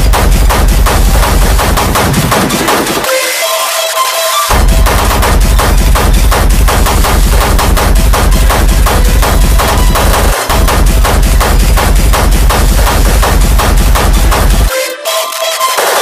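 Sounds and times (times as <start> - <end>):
hard techno music: 0.0 - 16.0.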